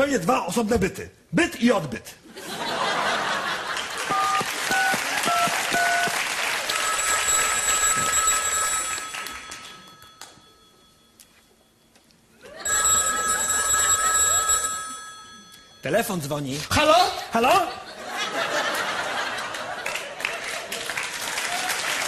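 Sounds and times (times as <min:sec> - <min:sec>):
audience applause: 0:03.2 - 0:07.4, 0:19.1 - 0:22.0
touch-tone keypad beeps: 0:04.1 - 0:11.2
electronic telephone ring: 0:04.1 - 0:11.4, 0:12.6 - 0:15.9.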